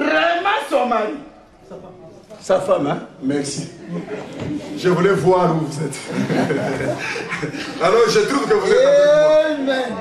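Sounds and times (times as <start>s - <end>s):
people chuckling and laughing: 5.8s - 9.3s.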